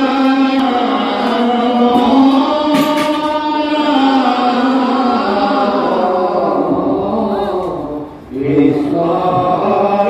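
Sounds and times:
men chanting a devotional hymn: 0.0 - 10.0.

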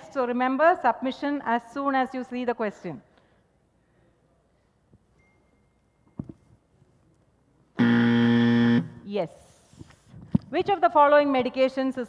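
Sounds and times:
quiz timer buzzer: 7.8 - 9.0.

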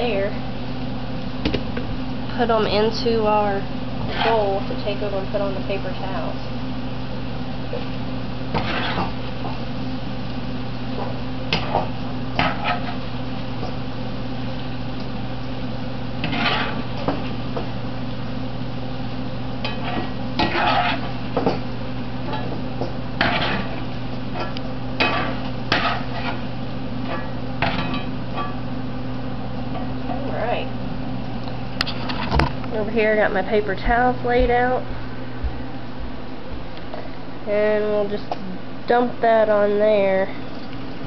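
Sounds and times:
oil sizzling: 3.7 - 30.0.

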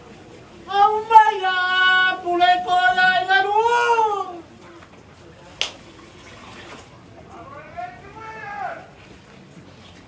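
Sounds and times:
background of people: 0.0 - 10.0.

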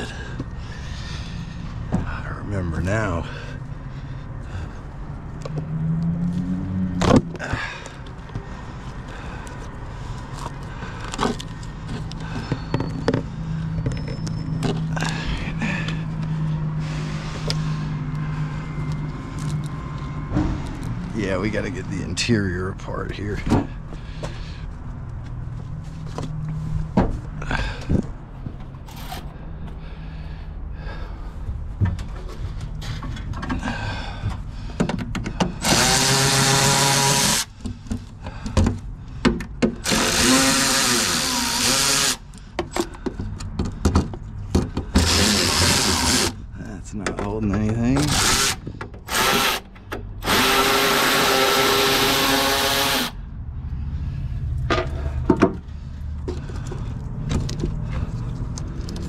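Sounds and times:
cordless ratchet motor whine: 35.6 - 37.5, 39.8 - 42.3, 45.0 - 46.4, 48.0 - 53.2
clicks and handling of tools: 56.2 - 59.0.

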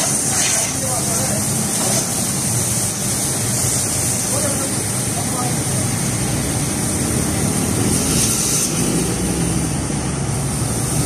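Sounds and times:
hose spraying water on car: 0.0 - 11.0.

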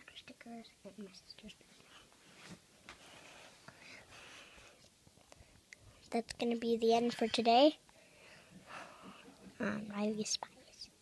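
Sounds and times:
faint whispering: 0.0 - 2.1, 8.7 - 11.0.

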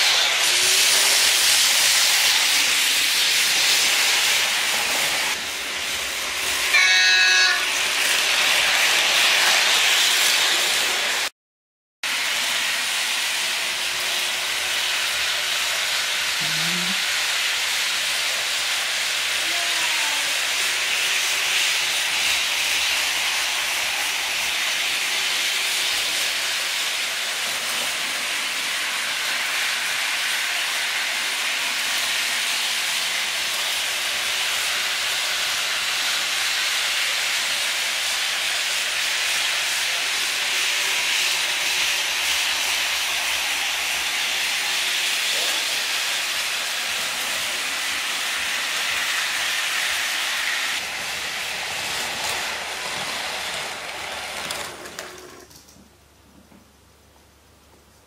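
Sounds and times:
model trains running on track: 0.0 - 11.3, 12.1 - 55.6.

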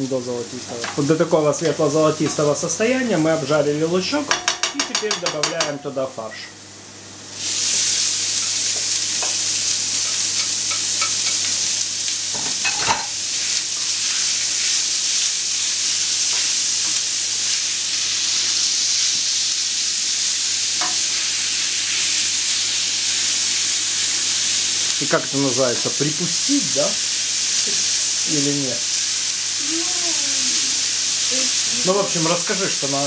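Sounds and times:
meat sizzling in frying pan: 0.0 - 33.0
spatula knocking against pan: 4.3 - 5.8.

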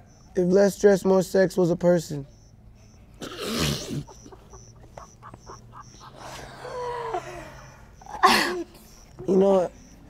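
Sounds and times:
woman laughing breathily: 3.8 - 9.1.

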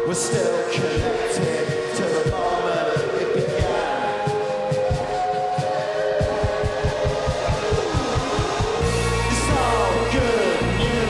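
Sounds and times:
live band playing: 0.0 - 11.0
drum roll: 3.5 - 11.0.

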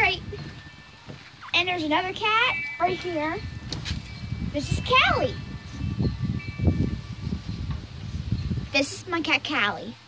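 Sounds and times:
low rumbling on microphone: 0.0 - 2.2, 3.0 - 8.8
wind chimes ringing: 0.0 - 9.7.

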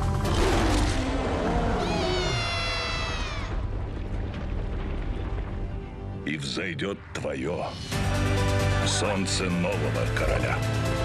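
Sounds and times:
lion cub roar: 0.3 - 3.6
orchestral film music: 6.3 - 11.0.

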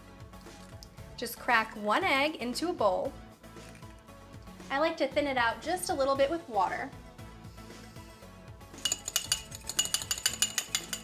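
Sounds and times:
fork clinking against ceramic bowl: 8.8 - 11.0.

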